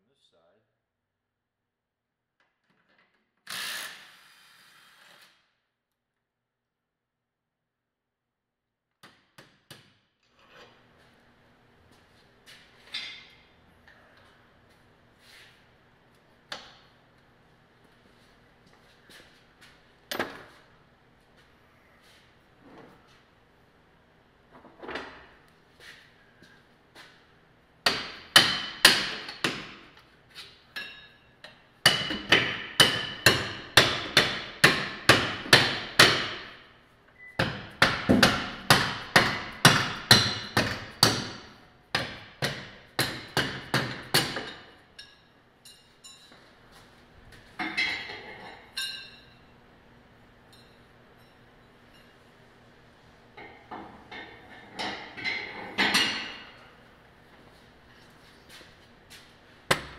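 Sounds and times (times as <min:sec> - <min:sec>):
hammer striking steel: 0:31.9 - 0:36.6, 0:37.4 - 0:45.2.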